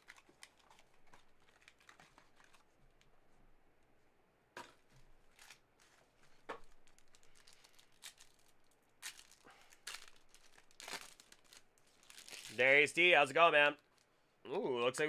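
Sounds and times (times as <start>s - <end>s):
foil wrapper crinkling and tearing: 0.0s - 2.7s, 5.3s - 13.1s.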